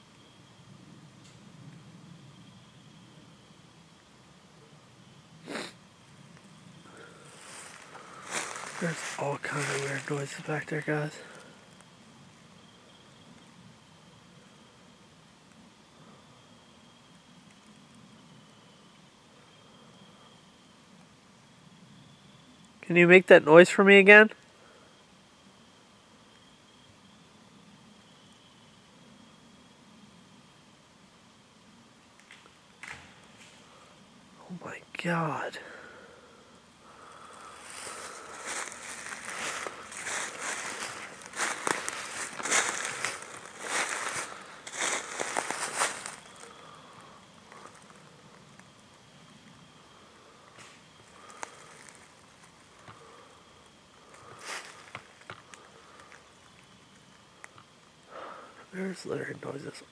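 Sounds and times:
faint steady high tone: 0:06.1 - 0:31.8
footsteps crunching dry leaves: 0:06.9 - 0:11.4, 0:37.0 - 0:46.8, 0:51.0 - 0:52.5, 0:54.2 - 0:55.1.

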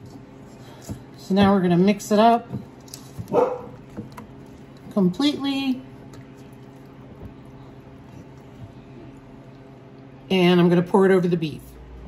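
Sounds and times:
dog bark: 0:03.3 - 0:03.8.

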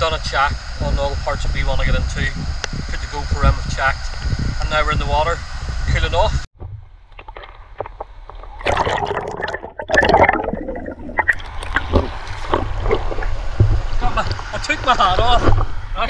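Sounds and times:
muffled water sloshing and splashing: 0:06.6 - 0:15.9
bubbling clicks: 0:07.1 - 0:14.6.

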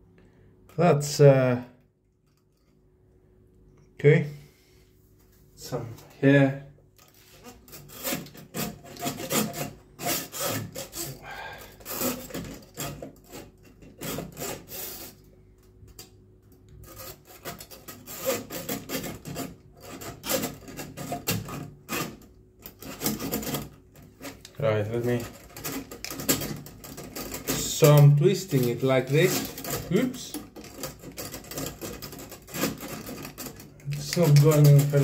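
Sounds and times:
drain snake scraping in drain: 0:07.0 - 0:15.3, 0:16.8 - 0:35.0.

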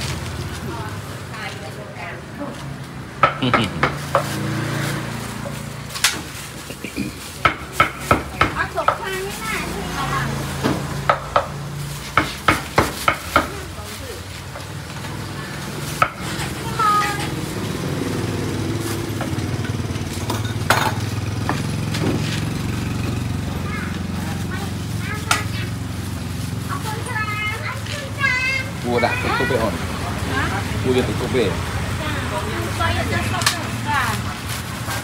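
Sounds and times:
background chatter: 0:00.0 - 0:35.0
cleaver chopping on wooden block: 0:03.2 - 0:04.3.

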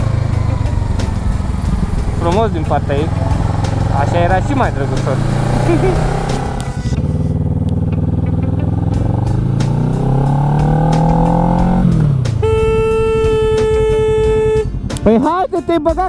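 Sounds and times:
motorcycle engine revving: 0:00.0 - 0:15.2
vehicle horn blast: 0:12.3 - 0:14.9.

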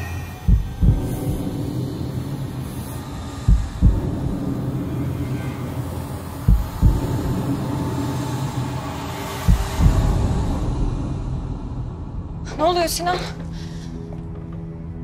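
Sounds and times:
low rumbling drone: 0:00.0 - 0:12.7
deep heartbeat-like thumps: 0:00.4 - 0:05.2, 0:06.1 - 0:12.4.

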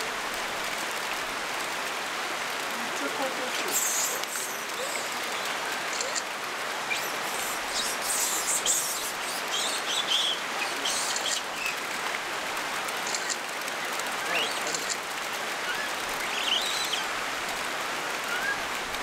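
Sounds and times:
watery hiss of hot spring: 0:00.0 - 0:19.0.

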